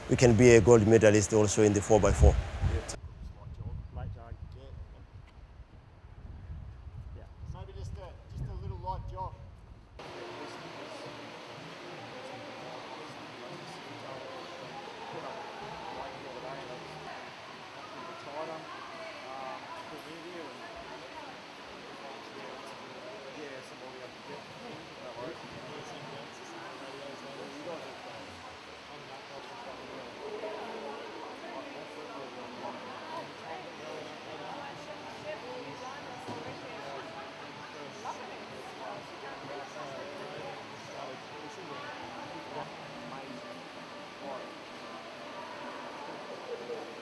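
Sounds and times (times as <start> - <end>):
people chattering: 0.0 - 3.0, 10.0 - 47.0.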